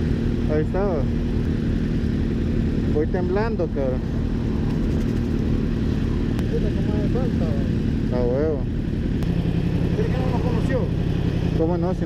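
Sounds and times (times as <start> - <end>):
motorcycle engines idling: 0.0 - 12.0.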